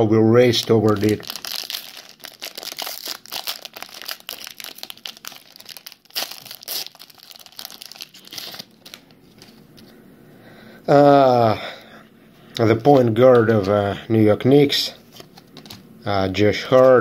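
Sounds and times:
plastic foil wrapper crinkling: 0.5 - 9.5.

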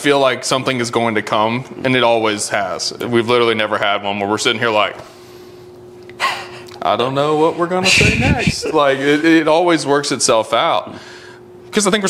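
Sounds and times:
faint steady hum: 0.0 - 12.0
man speaking: 6.8 - 10.8
man's sharp intake of breath: 10.9 - 11.5.

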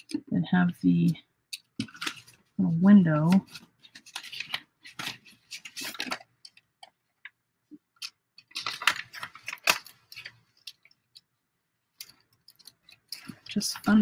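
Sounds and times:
paper envelopes rustling: 1.5 - 7.4, 8.0 - 11.2, 11.9 - 14.0.

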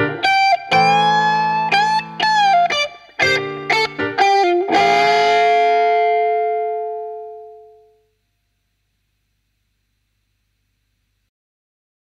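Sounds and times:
electric guitar note ringing out: 0.0 - 8.2.

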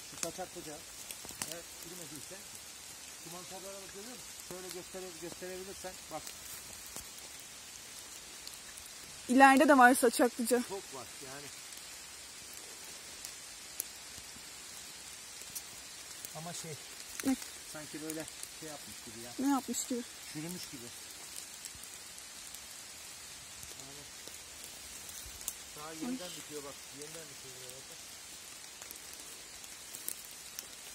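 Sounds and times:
outdoor background hiss: 0.0 - 30.9
small pattering ticks: 0.0 - 30.9
soft ticks: 15.4 - 16.2
person speaking: 18.9 - 20.7, 25.8 - 26.8.

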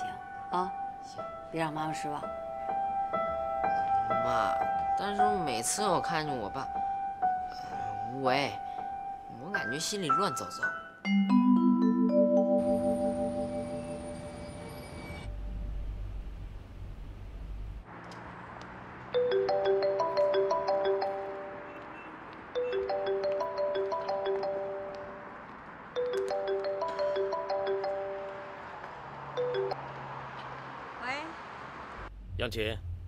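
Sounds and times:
phone ringtone melody: 9.6 - 14.8, 19.2 - 28.7, 29.3 - 29.9
low traffic rumble: 12.6 - 33.0.

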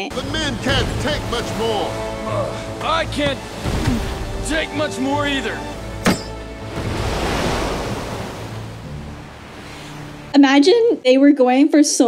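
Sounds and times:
rushing sea water: 0.0 - 11.1.

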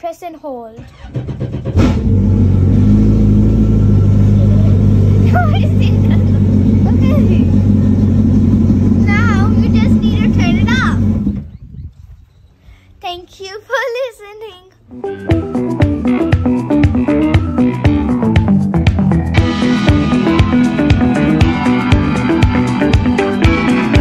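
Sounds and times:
child speaking: 0.0 - 0.8, 5.2 - 7.6, 9.0 - 11.1, 13.0 - 14.8
watercraft engine starting and idling: 0.8 - 11.6.

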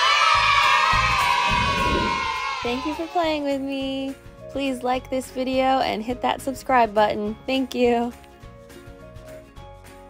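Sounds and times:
children cheering and shouting: 0.0 - 3.2
background music: 0.0 - 10.0.

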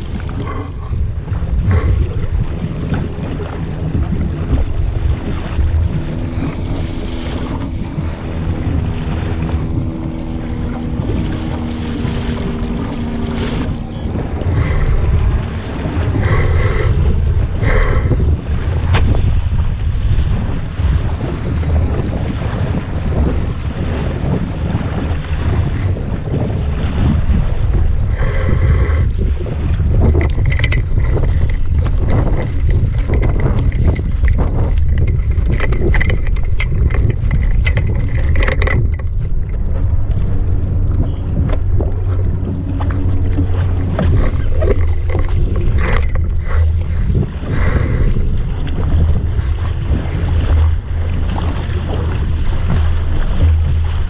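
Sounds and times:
heavy wind on microphone: 0.0 - 54.0
water rushing along a hull: 0.0 - 54.0.

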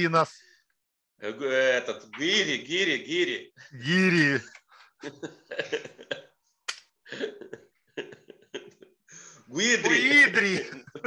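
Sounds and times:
man laughing: 5.0 - 6.3, 7.1 - 8.8, 9.6 - 11.0.

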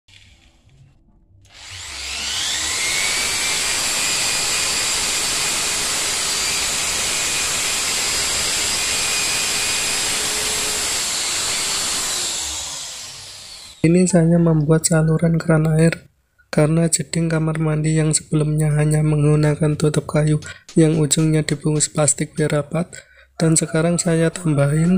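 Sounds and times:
electric drill in concrete: 1.5 - 13.9.

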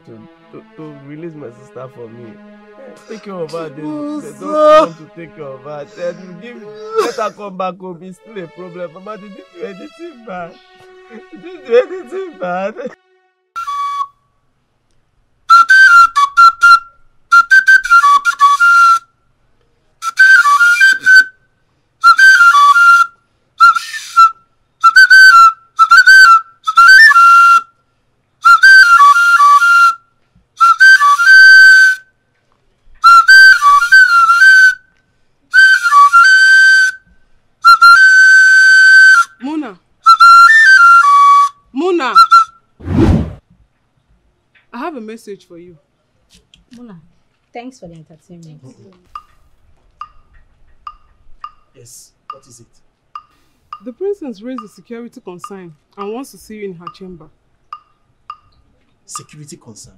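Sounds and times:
wooden flute playing: 0.2 - 14.4, 15.5 - 19.2, 20.0 - 27.7, 28.4 - 32.2, 32.9 - 43.4
low thud: 42.8 - 43.6.

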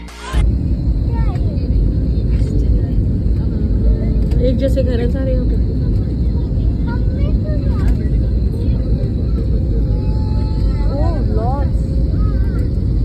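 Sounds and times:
airliner cabin engine rumble: 0.4 - 13.0
faint voices: 0.8 - 13.0.

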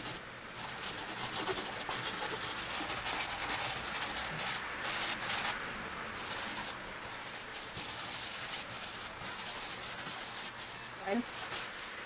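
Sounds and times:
hand rubbing pastel on paper: 0.0 - 5.6, 6.2 - 12.0.

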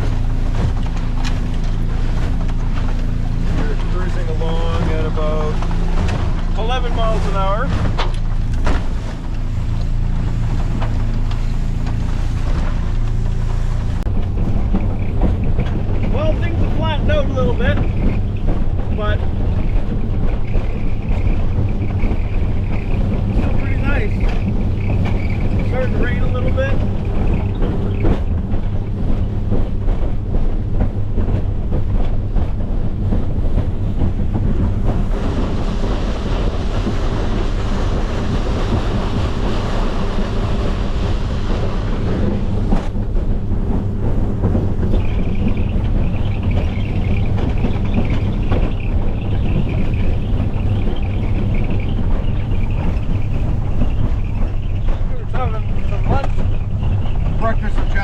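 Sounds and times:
motorboat engine running: 0.0 - 58.0
water rushing: 0.0 - 58.0
wind buffeting microphone: 0.0 - 58.0.

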